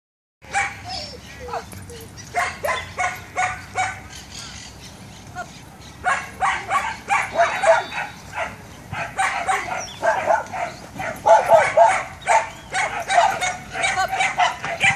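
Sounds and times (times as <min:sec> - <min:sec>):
dog barking rapidly: 0:00.5 - 0:00.8, 0:02.4 - 0:04.2, 0:06.0 - 0:14.9.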